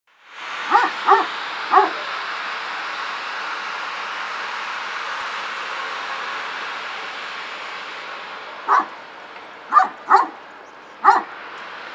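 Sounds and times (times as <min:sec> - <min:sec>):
steady rushing noise: 0:00.2 - 0:11.9
dog barking: 0:00.7 - 0:02.1, 0:08.7 - 0:09.0, 0:09.7 - 0:10.4, 0:11.0 - 0:11.3.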